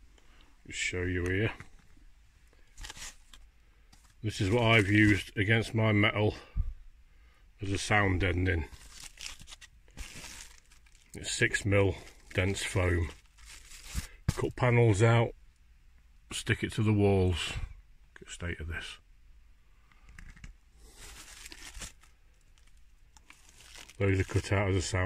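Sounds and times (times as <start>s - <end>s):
foam sheet rustling and crinkling: 4.0s - 5.3s, 8.7s - 14.6s, 20.8s - 25.0s.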